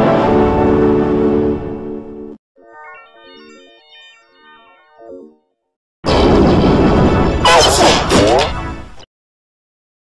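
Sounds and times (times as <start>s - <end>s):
bell-like electronic jingle: 2.6s - 5.6s.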